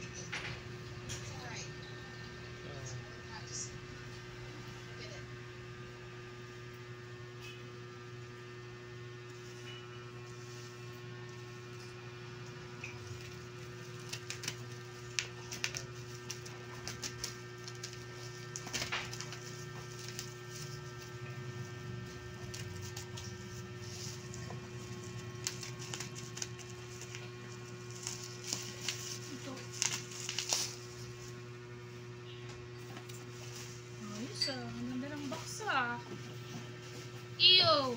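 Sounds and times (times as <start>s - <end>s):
low electrical hum: 0.0s - 37.9s
bubble wrap crackling: 9.2s - 31.7s.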